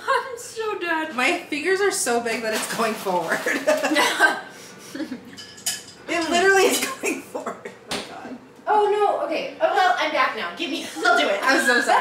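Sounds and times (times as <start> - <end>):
woman laughing: 3.4 - 5.3.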